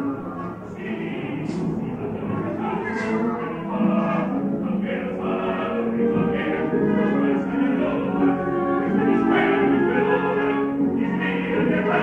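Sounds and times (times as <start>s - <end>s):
opera singing with orchestra: 0.0s - 12.0s.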